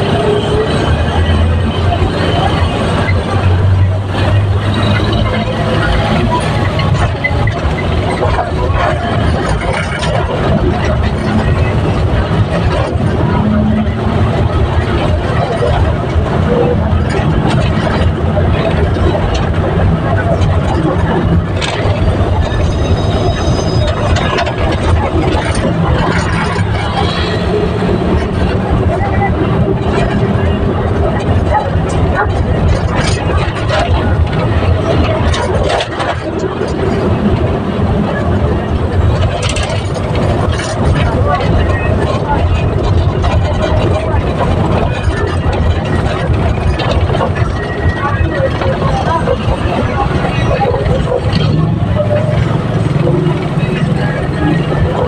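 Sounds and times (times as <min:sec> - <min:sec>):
people talking: 0:00.0 - 0:55.0
vehicle engine and road noise: 0:00.0 - 0:55.0.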